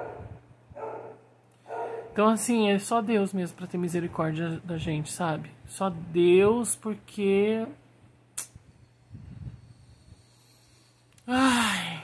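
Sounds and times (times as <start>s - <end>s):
faint dog barking: 0.0s - 2.2s.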